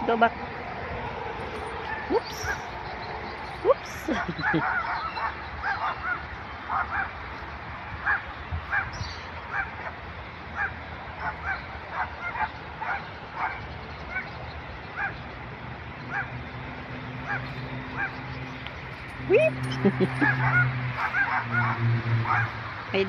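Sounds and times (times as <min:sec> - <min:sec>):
dog barking: 0:04.1 - 0:07.2, 0:09.5 - 0:09.9, 0:10.6 - 0:14.3, 0:15.0 - 0:15.2, 0:17.2 - 0:18.2, 0:20.1 - 0:22.6.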